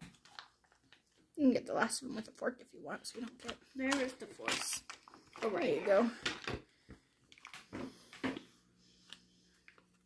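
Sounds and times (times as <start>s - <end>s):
plastic package crinkling: 3.9s - 6.5s.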